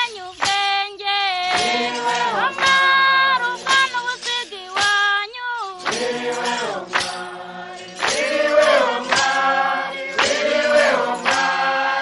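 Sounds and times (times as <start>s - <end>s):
female voices singing: 0.0s - 12.0s.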